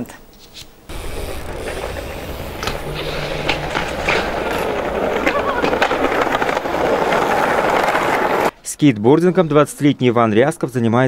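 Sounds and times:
wheels rolling over stone paving: 0.9s - 8.5s.

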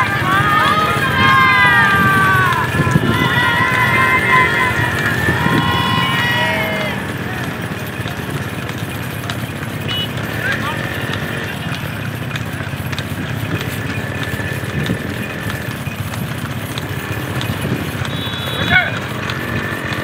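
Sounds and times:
hooves clattering on asphalt: 0.0s - 20.0s
motorcycle engines running: 0.0s - 20.0s.

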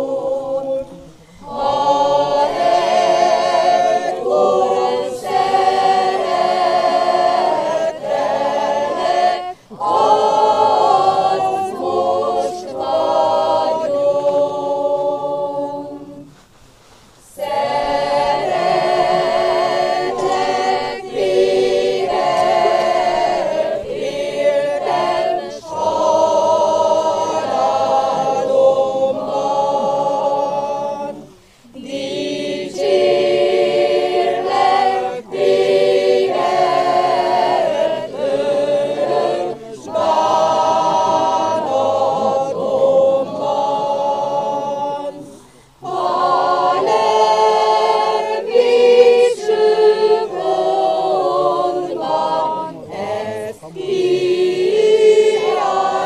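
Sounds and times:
church choir singing a hymn: 0.0s - 16.5s, 17.2s - 56.0s.

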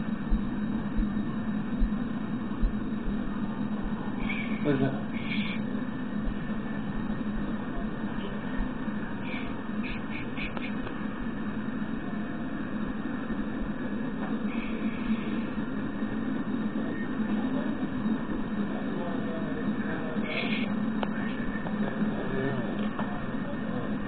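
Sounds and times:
freight cars rumbling on rails: 0.0s - 24.0s.

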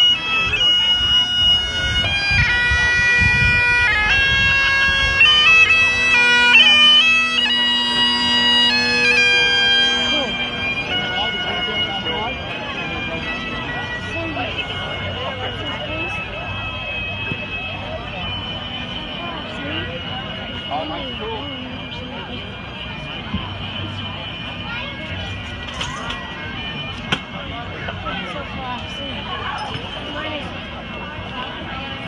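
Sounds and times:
bagpipes playing: 0.0s - 32.0s
crowd chatter: 0.0s - 32.0s.

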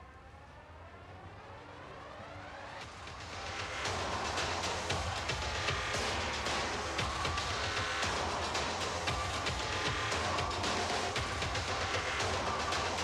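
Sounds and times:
music bed with steady beat: 2.8s - 13.0s.

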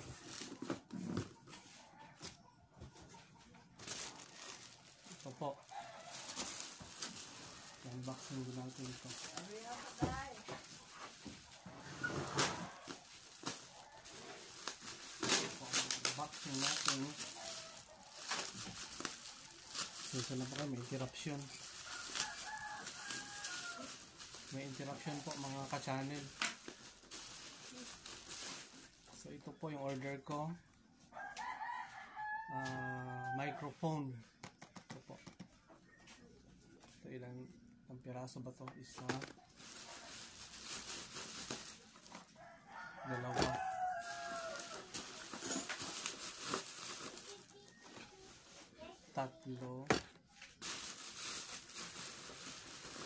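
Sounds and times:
bubble wrap rustling: 0.0s - 30.4s, 38.8s - 53.0s
rooster crowing: 21.8s - 24.0s, 31.1s - 33.6s, 42.3s - 45.2s.

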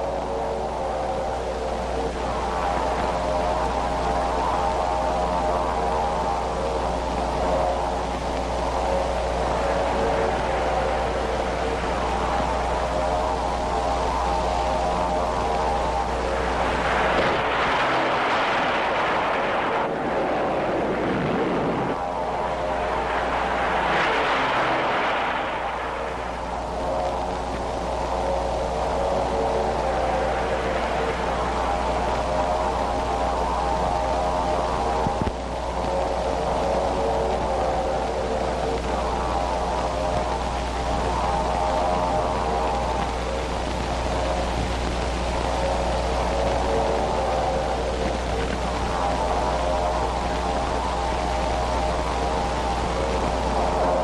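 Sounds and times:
aircraft engines droning: 0.0s - 54.0s
constant low hum: 0.0s - 54.0s
plane diving: 0.0s - 54.0s.

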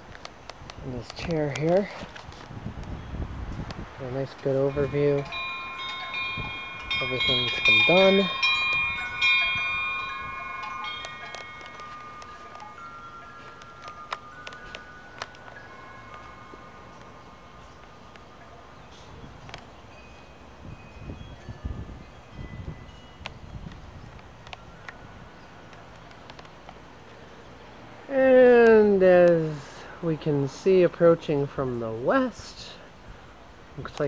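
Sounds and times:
light wind: 0.0s - 34.0s
wind chimes ringing: 4.1s - 32.8s.

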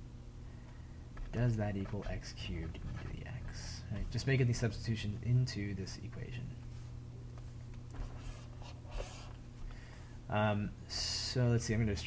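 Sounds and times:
low electrical hum: 0.0s - 12.0s
stylus scratching on tablet: 1.2s - 3.8s.

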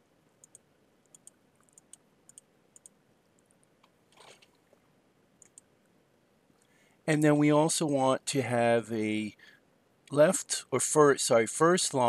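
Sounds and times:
mouse and keyboard clicks: 0.4s - 4.6s, 5.4s - 5.7s.

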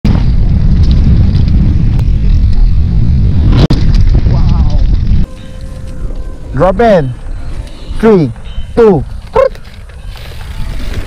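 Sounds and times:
bike tyre rumble on dirt: 0.1s - 11.0s
heavy wind buffeting: 0.1s - 11.0s.

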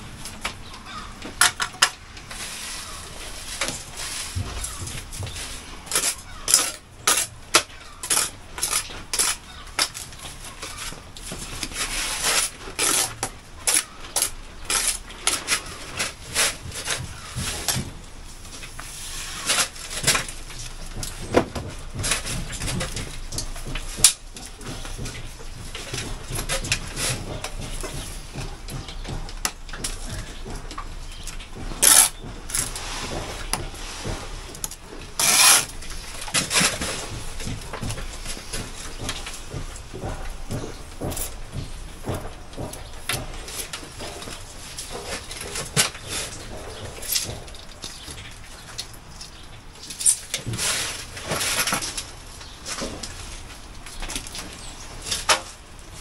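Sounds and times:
trowel scraping concrete blocks: 0.9s - 17.8s, 31.6s - 39.1s.

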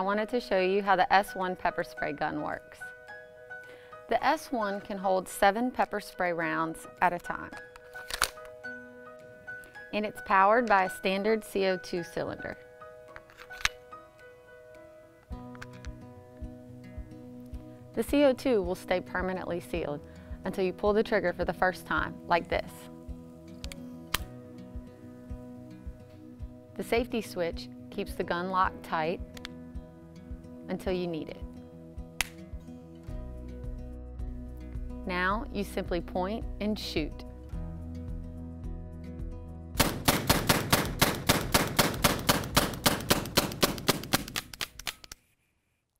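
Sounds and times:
light background music: 0.0s - 44.9s
rapid sharp cracks: 39.8s - 45.2s.

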